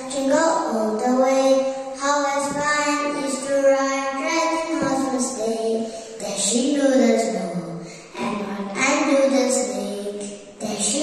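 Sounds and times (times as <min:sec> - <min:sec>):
girl singing into a microphone: 0:01.6 - 0:03.2.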